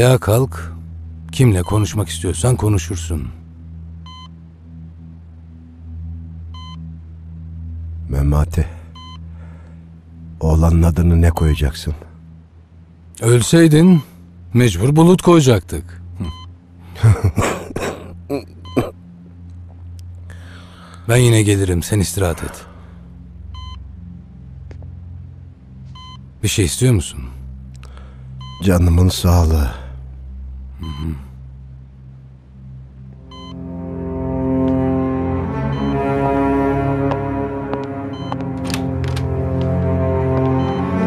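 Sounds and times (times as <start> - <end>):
background music drone: 0.0 - 41.0
low steady hum: 0.0 - 41.0
heart monitor beep: 4.0 - 4.4, 6.5 - 6.9, 9.0 - 9.3, 16.2 - 16.5, 18.6 - 18.9, 23.5 - 23.8, 25.9 - 26.3, 28.4 - 28.7, 30.8 - 31.2, 33.3 - 33.7, 35.6 - 39.1, 40.2 - 41.0.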